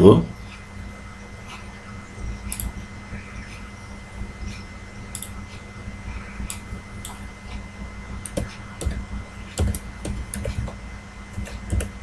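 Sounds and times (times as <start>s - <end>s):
low electrical hum: 0.0s - 12.0s
sharp computer clicks: 2.5s - 2.8s, 4.5s - 5.4s, 6.4s - 7.2s, 8.2s - 9.0s, 9.6s - 12.0s.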